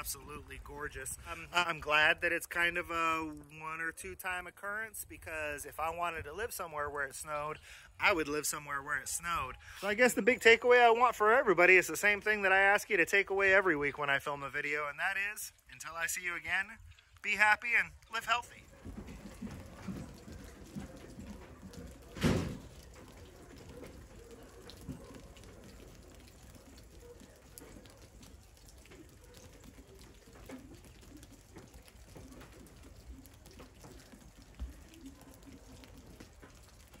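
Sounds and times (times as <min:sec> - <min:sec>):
soft ticks and drips: 0:00.0 - 0:37.0
wet snow falling in woods: 0:00.0 - 0:37.0.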